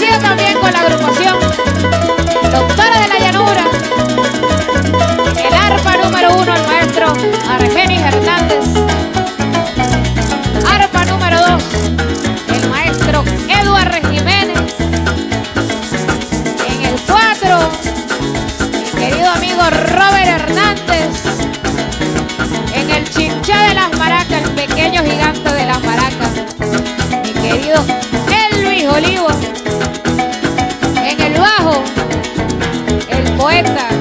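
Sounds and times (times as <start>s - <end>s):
bass line: 0.0s - 34.0s
harp melody: 0.0s - 34.0s
maracas shaking: 0.0s - 34.0s.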